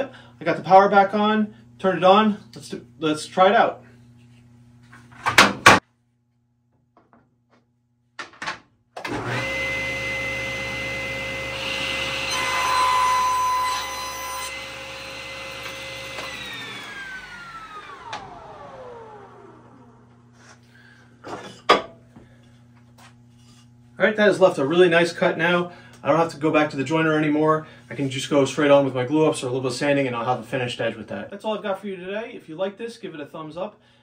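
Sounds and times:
table saw whine: 0:09.0 - 0:20.4.

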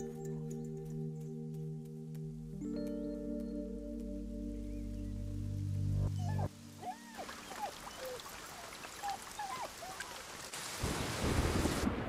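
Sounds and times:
music: 0:00.0 - 0:07.2
dogs whimpering: 0:06.2 - 0:10.1.

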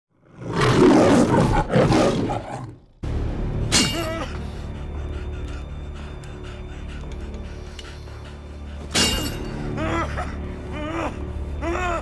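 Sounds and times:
lion roar: 0:00.2 - 0:03.0.

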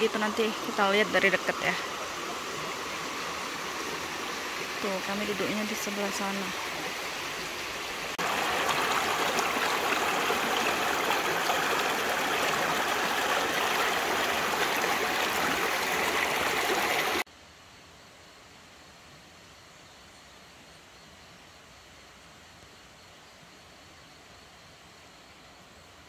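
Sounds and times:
river rushing over rocks: 0:00.0 - 0:17.2
faint steady hiss: 0:00.0 - 0:26.0.

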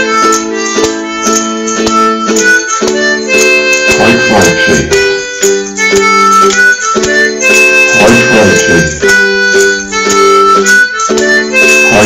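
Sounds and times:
harmonica playing melody: 0:00.0 - 0:12.0
strummed ukulele chords: 0:00.0 - 0:12.0
tambourine jingling: 0:00.0 - 0:12.0.

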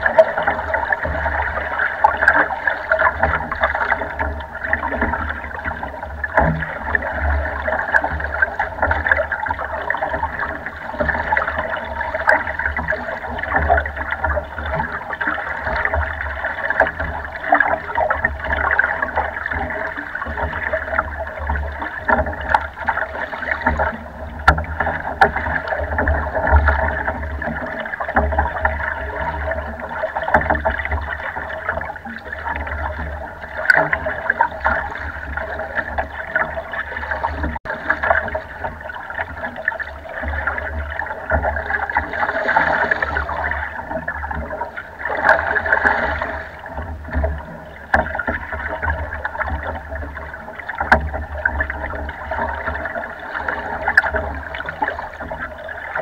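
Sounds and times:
water splashing against boat hull: 0:00.0 - 0:56.0.

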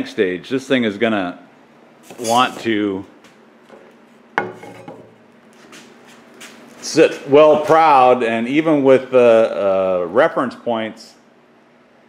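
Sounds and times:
faint rubbing and handling noise: 0:02.0 - 0:02.8.

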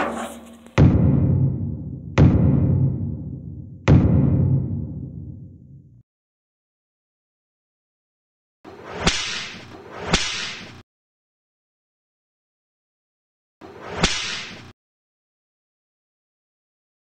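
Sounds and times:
deep boom hit: 0:00.8 - 0:06.0
whip-like swooshes: 0:08.7 - 0:10.8, 0:13.6 - 0:14.7.

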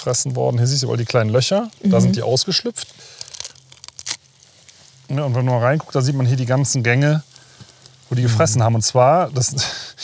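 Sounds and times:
dry bark cracking: 0:02.8 - 0:05.6, 0:07.3 - 0:08.0.

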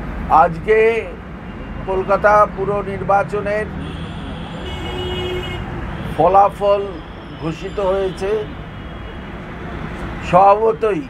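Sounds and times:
road traffic: 0:00.0 - 0:11.0
vehicle horn: 0:03.8 - 0:09.4.

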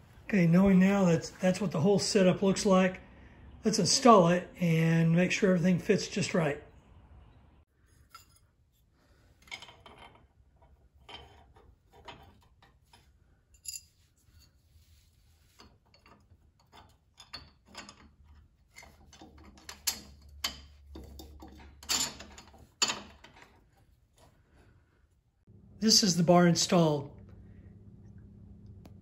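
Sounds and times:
metal hardware clinking: 0:15.9 - 0:23.8.

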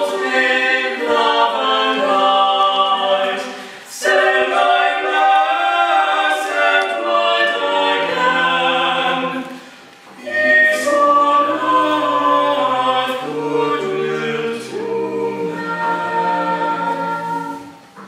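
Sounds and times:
vocal quartet singing a cappella: 0:00.0 - 0:18.0.

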